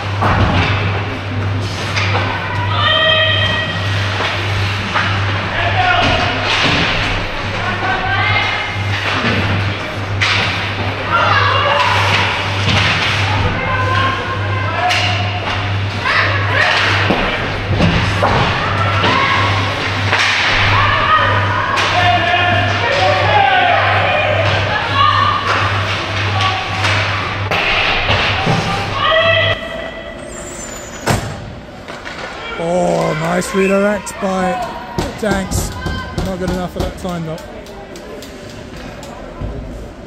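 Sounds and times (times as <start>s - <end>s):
low arena hum: 0.0s - 40.0s
hockey sticks and puck knocking: 35.0s - 37.4s.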